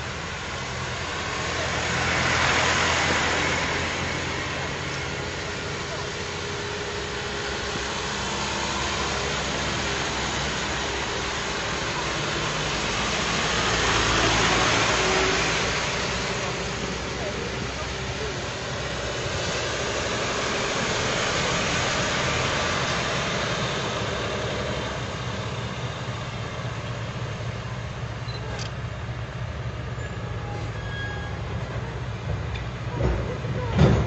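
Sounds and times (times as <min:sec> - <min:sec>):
van tyres hissing on wet road: 0:00.0 - 0:26.7
heavy truck engine rumble: 0:00.0 - 0:34.0.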